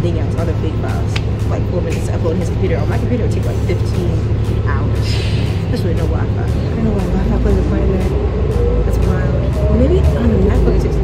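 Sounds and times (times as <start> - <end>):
bus engine and road rumble: 0.0 - 11.0.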